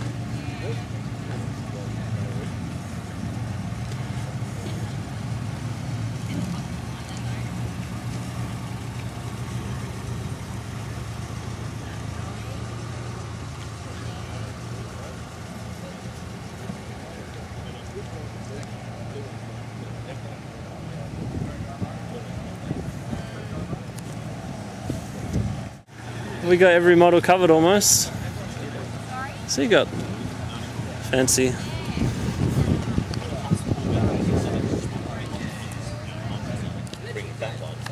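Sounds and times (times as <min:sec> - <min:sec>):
faint background chatter: 0:00.0 - 0:26.6, 0:27.5 - 0:37.9
car engine idling: 0:00.0 - 0:37.9.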